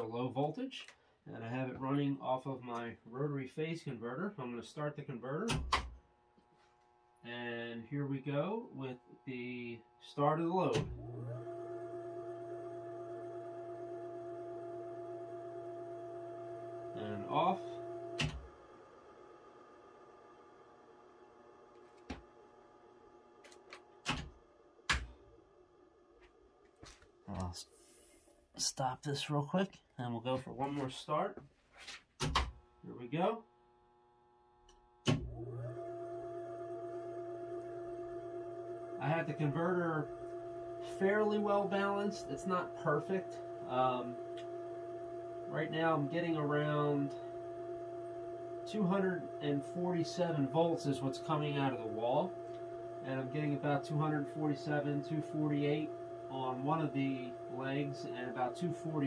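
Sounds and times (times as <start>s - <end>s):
steady electrical hum: 0.0s - 35.1s, 36.1s - 59.0s
electric motor whine: 10.8s - 20.0s, 35.2s - 59.0s.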